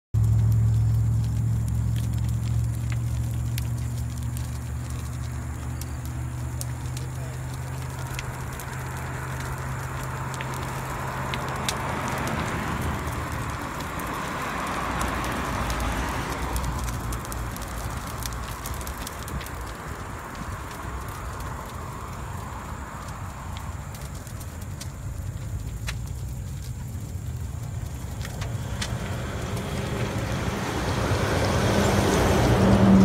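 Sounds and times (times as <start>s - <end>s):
low steady hum: 0.2s - 11.2s
fire crackling and popping: 0.2s - 33.0s.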